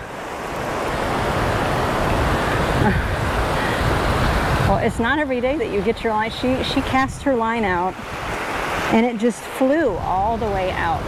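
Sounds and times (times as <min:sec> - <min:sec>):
strong wind on microphone: 0:00.0 - 0:09.1, 0:09.8 - 0:11.0
surf washing on beach: 0:00.0 - 0:11.0.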